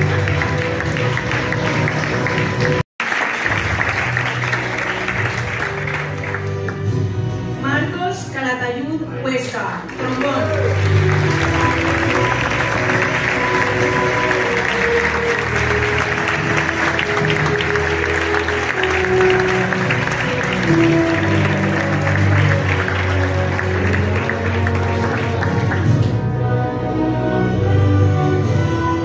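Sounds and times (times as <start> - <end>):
audience applauding: 0.0 - 7.0, 9.8 - 26.3
music of long held notes: 10.7 - 29.0.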